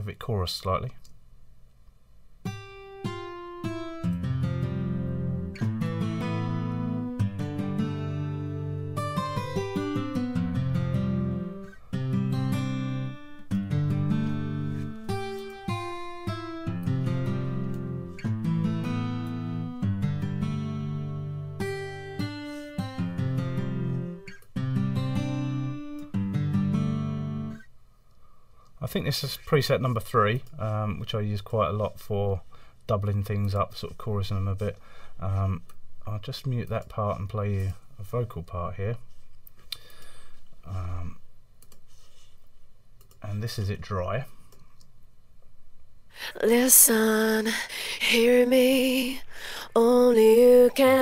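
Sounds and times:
guitar chords with chorus effect: 0:02.5 - 0:27.6.

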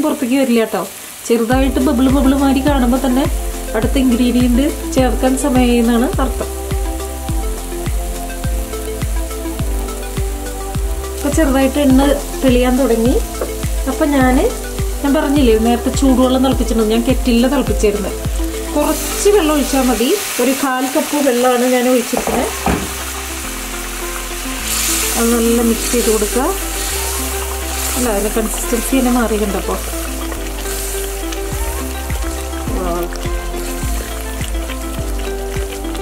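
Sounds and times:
spices sizzling in a pan: 0:00.0 - 0:36.0
water poured onto hot pan: 0:00.1 - 0:36.0
background music with steady beat: 0:01.5 - 0:20.4, 0:21.6 - 0:36.0.

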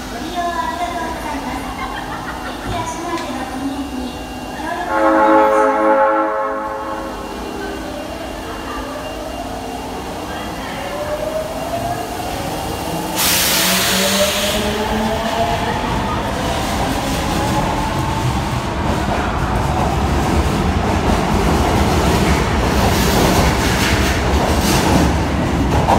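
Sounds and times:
train wheel rumble and clatter: 0:11.0 - 0:25.9.

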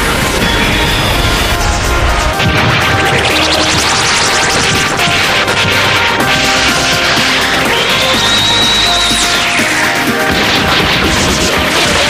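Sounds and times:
loud remix music with crashing hits: 0:00.0 - 0:12.0.

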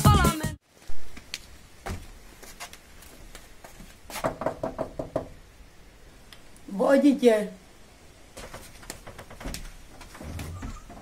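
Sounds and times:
knocking on wooden door: 0:04.2 - 0:05.4.

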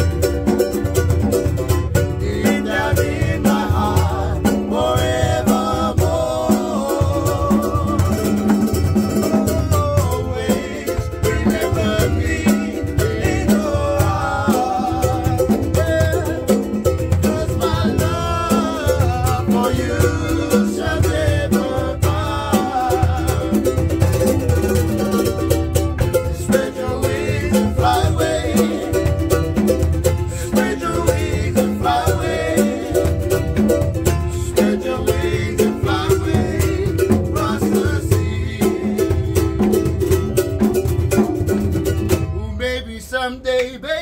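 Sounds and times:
skin drums beaten with sticks: 0:00.0 - 0:42.4
ukuleles strummed: 0:00.0 - 0:42.6
men singing: 0:01.9 - 0:40.6, 0:42.1 - 0:44.0.

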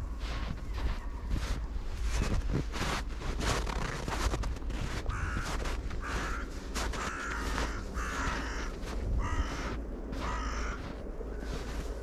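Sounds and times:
footsteps crunching in snow: 0:00.0 - 0:12.0
wind rumble on microphone: 0:00.0 - 0:12.0
bird calling: 0:05.1 - 0:11.8.

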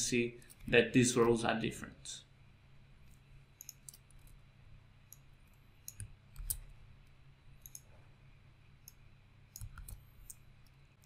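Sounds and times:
faint low hum: 0:00.0 - 0:11.0
mouse and keyboard clicks: 0:03.1 - 0:04.4, 0:05.1 - 0:06.7, 0:07.6 - 0:07.9, 0:08.8 - 0:10.8.

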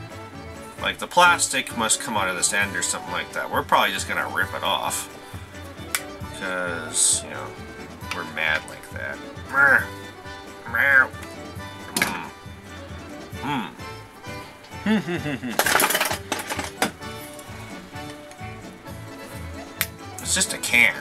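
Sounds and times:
background music: 0:00.0 - 0:21.0
short voice-like calls: 0:13.4 - 0:13.9.

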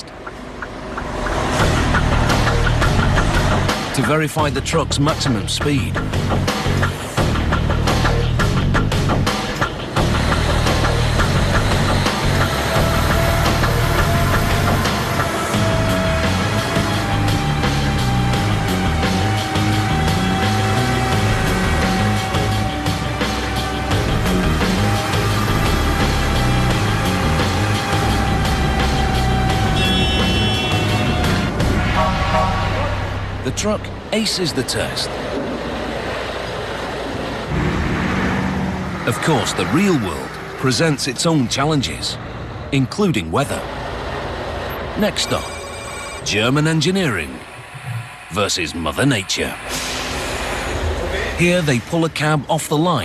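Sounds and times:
background music: 0:00.0 - 0:53.0
truck whine on test bench: 0:08.9 - 0:33.5.

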